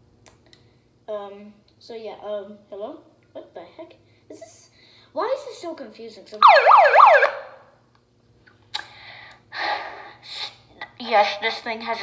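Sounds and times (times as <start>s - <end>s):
megaphone siren wailing: 6.4s - 7.6s.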